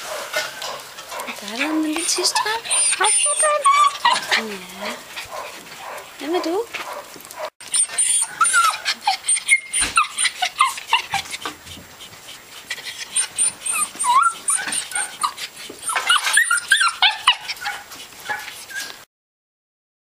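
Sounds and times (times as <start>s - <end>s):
dogs yapping and yelping: 0.0s - 19.1s.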